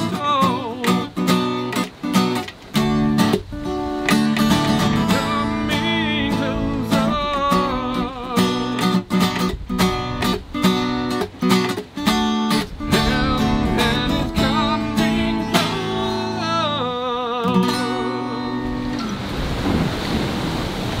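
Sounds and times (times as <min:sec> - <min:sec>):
person singing: 0:00.0 - 0:01.6, 0:04.4 - 0:09.0, 0:12.9 - 0:18.8
acoustic guitar strumming: 0:00.0 - 0:19.4
wind and sea: 0:00.0 - 0:21.0.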